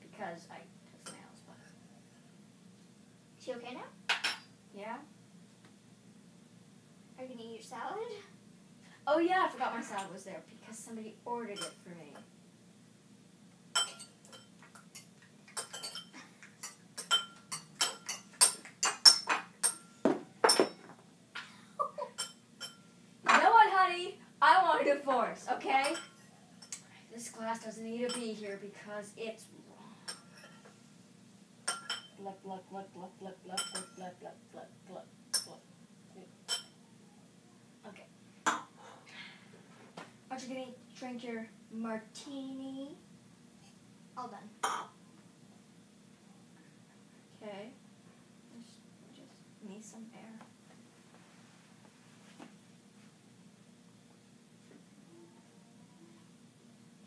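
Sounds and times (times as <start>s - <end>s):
fork clinking against a bowl: 13.8s - 20.7s, 22.2s - 22.9s, 30.1s - 30.6s, 31.7s - 32.2s, 33.6s - 34.0s, 35.3s - 35.6s, 36.5s - 36.8s.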